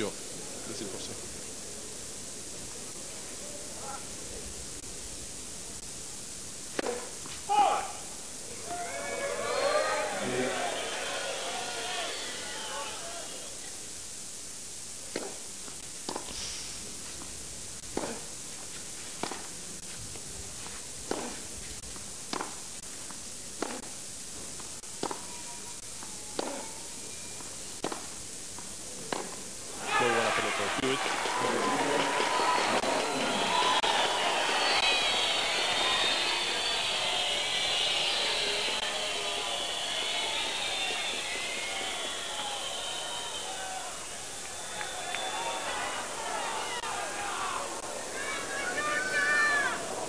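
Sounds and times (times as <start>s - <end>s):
racket hitting tennis ball: 6.7s - 7.4s, 15.1s - 15.4s, 16.1s - 16.4s, 17.9s - 18.3s, 19.2s - 19.5s, 21.0s - 21.4s, 22.3s - 22.6s, 23.6s - 23.9s, 25.0s - 25.3s, 27.8s - 28.2s, 29.1s - 29.4s
crowd voices and calls: 8.4s - 13.6s, 29.7s - 50.0s.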